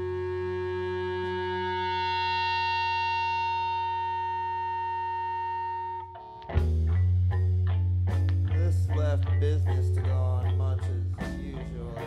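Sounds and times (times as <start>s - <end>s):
rock band amplified drone: 0.0s - 12.0s.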